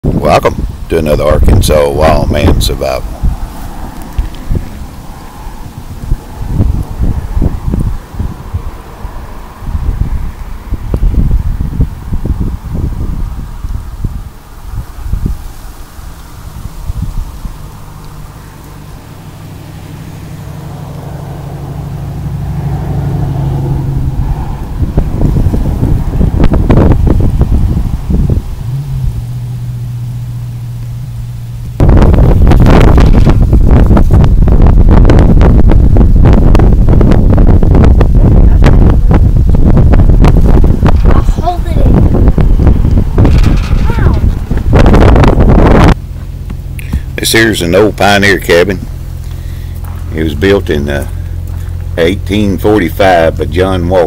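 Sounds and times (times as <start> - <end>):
low engine drone: 0.0 - 54.0
wind gusting against microphone: 0.0 - 54.0.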